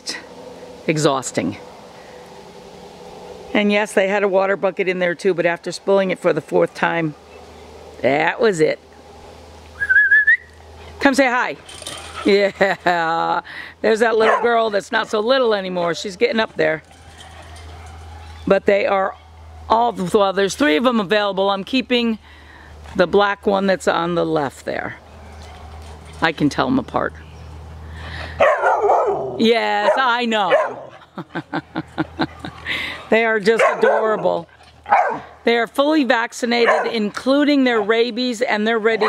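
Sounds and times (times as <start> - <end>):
person whistling a wavering note: 9.8 - 10.5
puppy barking: 14.2 - 14.6, 28.4 - 31.0, 33.6 - 34.3, 34.9 - 35.4, 36.6 - 37.0.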